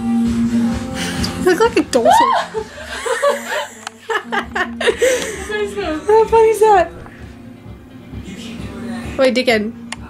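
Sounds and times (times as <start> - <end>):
woman laughing: 1.9 - 6.5
woman gasping: 4.8 - 5.8.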